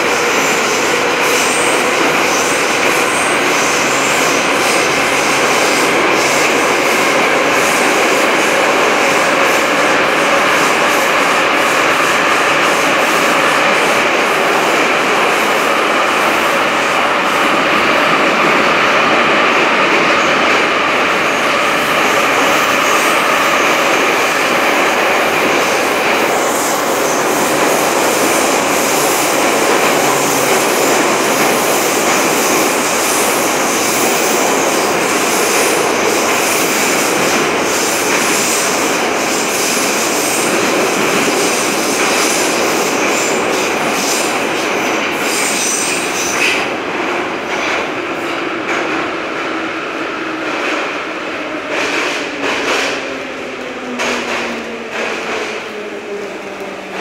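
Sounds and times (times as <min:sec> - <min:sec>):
train wheels rumbling on rail: 0:00.0 - 0:57.0.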